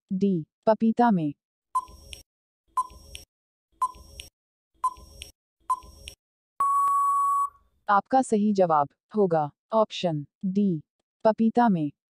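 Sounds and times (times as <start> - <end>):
short ticking beeps: 3.8 - 4.2, 4.8 - 6.0, 6.6 - 7.6
long steady beep: 6.6 - 7.6.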